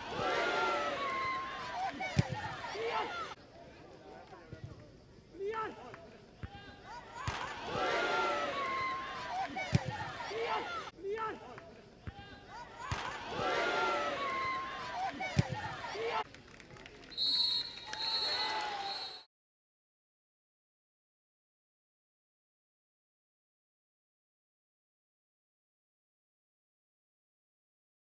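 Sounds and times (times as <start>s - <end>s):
shouting voices: 0.0s - 3.4s, 5.4s - 16.2s.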